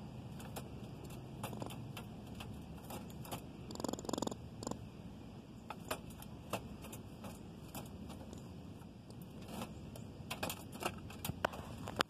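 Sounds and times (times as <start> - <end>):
wire mesh rattling: 9.2 - 11.8.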